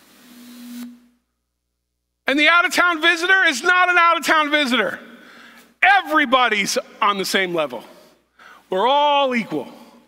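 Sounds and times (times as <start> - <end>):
man breathing in: 5.1 - 5.7, 7.9 - 8.7.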